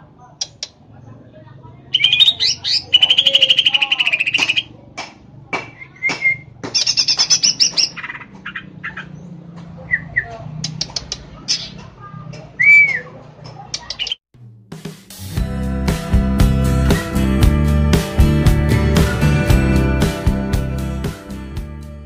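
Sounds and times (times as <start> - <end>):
bird singing chattering song: 0.4 - 0.8, 1.9 - 4.7, 5.7 - 11.9, 13.7 - 14.2.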